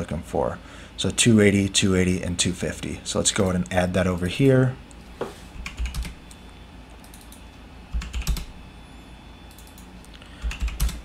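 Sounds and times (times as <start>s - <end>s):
computer keyboard typing: 5.6s - 6.4s, 7.0s - 8.5s, 9.5s - 11.0s.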